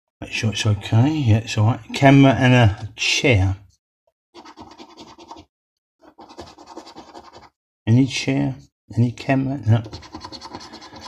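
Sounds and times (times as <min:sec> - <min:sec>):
coin scraping a scratchcard: 0:04.4 - 0:07.5, 0:09.9 - 0:11.0.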